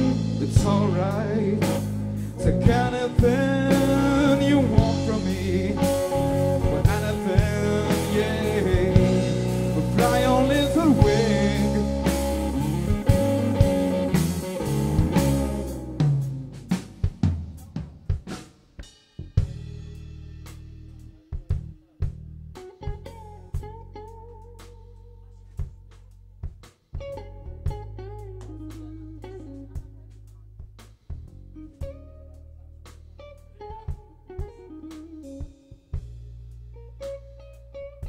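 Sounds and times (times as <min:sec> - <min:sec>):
electric guitar melodic lines: 0:00.0 - 0:17.6, 0:19.7 - 0:25.4, 0:27.0 - 0:30.2, 0:31.5 - 0:38.0
blues-rock band playing: 0:00.0 - 0:25.0, 0:26.0 - 0:38.0
bass guitar low notes: 0:00.0 - 0:38.0.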